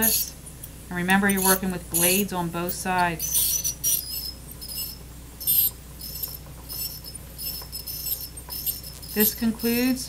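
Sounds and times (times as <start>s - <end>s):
ultrasonic scaler squealing: 0.0s - 0.4s, 1.2s - 10.0s.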